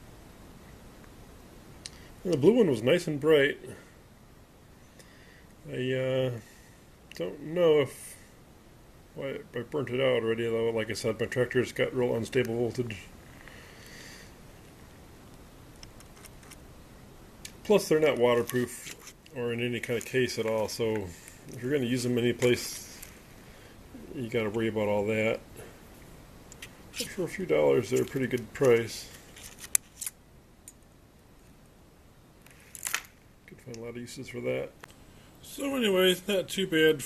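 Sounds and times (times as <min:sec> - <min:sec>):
plastic packaging rustle: 0:27.0 - 0:30.2
sharp clicks of small parts: 0:29.4 - 0:30.9, 0:32.4 - 0:33.2.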